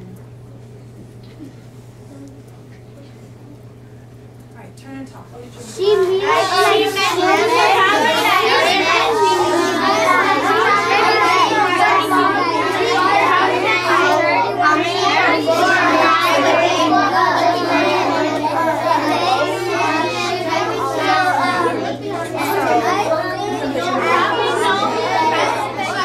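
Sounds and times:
steady low hum: 0:00.0 - 0:26.0
children chattering: 0:04.5 - 0:26.0.

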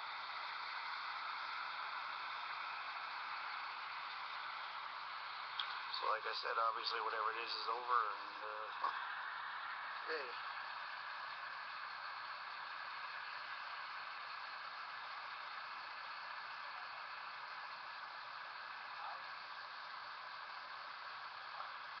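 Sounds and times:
steady static hiss: 0:00.0 - 0:22.0.

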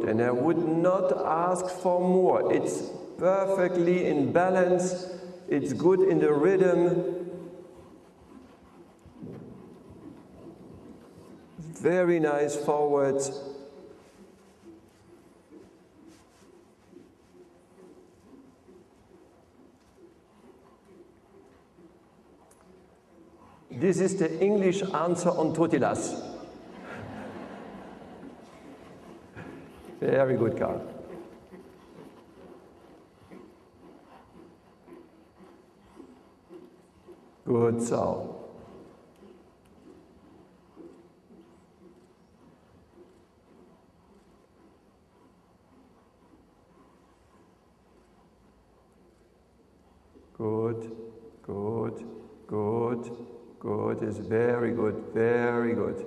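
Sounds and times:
horse hoofbeats on sand: 0:00.0 - 0:56.0.

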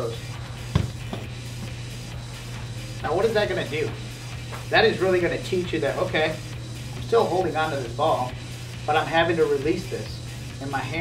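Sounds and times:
music with low bass line: 0:00.0 - 0:11.0
dull thump: 0:00.7 - 0:01.3.

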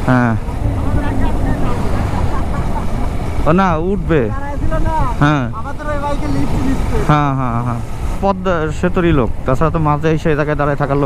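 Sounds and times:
motorcycle engine cruising: 0:00.0 - 0:09.5
wind rumble: 0:00.0 - 0:11.0.

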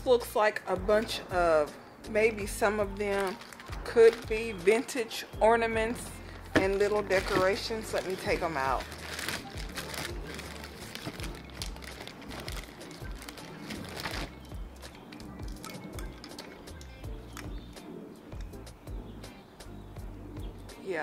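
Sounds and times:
background music with bass line: 0:00.0 - 0:04.7, 0:05.4 - 0:20.8
plastic bag crinkling: 0:02.9 - 0:05.2, 0:05.9 - 0:17.4
ornaments rummaged: 0:03.0 - 0:04.5, 0:06.0 - 0:14.5, 0:15.5 - 0:17.4.

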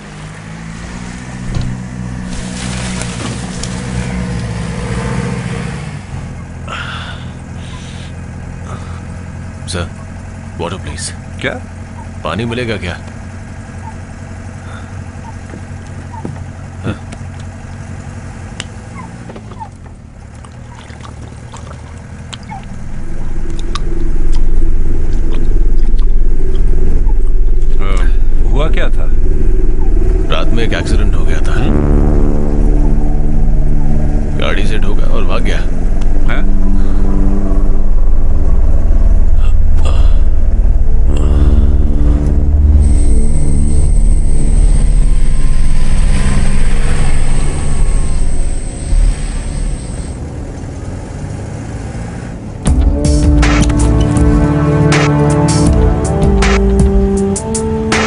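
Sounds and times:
jeep engine rumbling: 0:00.0 - 0:58.0
background music with held notes: 0:52.7 - 0:58.0.

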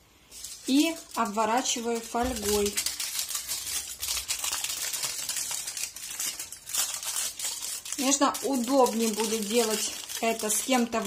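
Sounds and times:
aluminium foil crinkling: 0:00.2 - 0:11.0.

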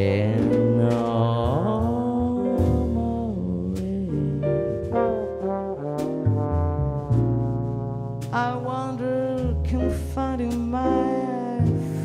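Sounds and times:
bass line: 0:00.0 - 0:12.0
jazz trombone ballad: 0:00.0 - 0:12.0.

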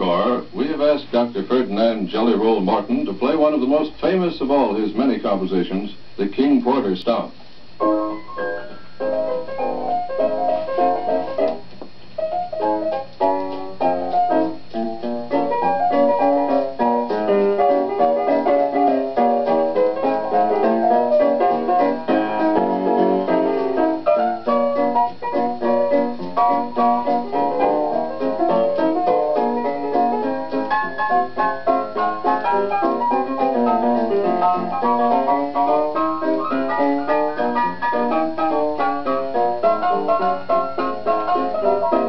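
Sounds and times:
jazz piano playing: 0:07.6 - 0:42.0.

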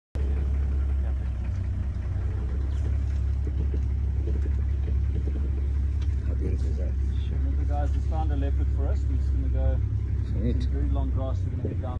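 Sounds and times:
faint voices murmuring: 0:00.2 - 0:11.9
vehicle engine idling: 0:00.2 - 0:11.9.

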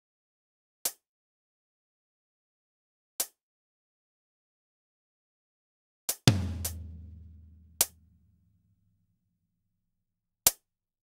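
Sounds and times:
short crisp drum hit: 0:06.3 - 0:07.9.

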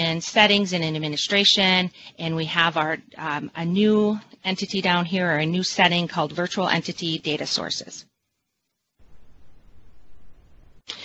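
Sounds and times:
microphone hiss and hum: 0:00.0 - 0:11.0
burst of noise: 0:09.0 - 0:11.0.

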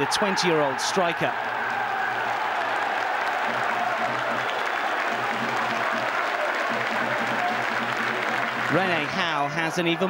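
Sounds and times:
stadium crowd cheering and applauding: 0:00.0 - 0:10.0.

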